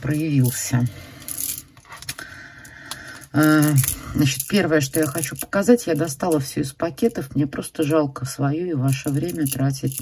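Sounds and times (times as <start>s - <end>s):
stone beads clicking together: 2.8s - 7.2s, 8.8s - 10.0s.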